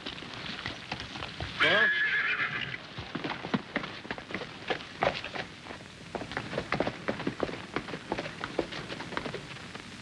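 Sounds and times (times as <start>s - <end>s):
hooves clip-clopping: 0.0s - 10.0s
horse whinnying: 1.6s - 2.8s.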